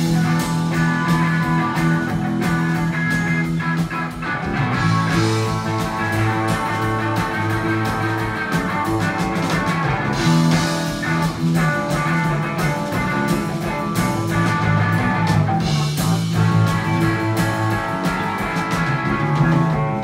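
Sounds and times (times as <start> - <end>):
bass guitar: 0.0 - 20.0
drum kit: 0.0 - 20.0
electric guitar: 0.0 - 20.0.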